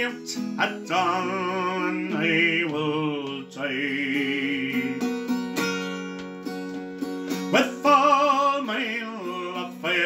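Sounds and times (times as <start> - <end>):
man singing: 0.0 - 5.6, 7.4 - 10.0
acoustic guitar strumming: 0.0 - 10.0.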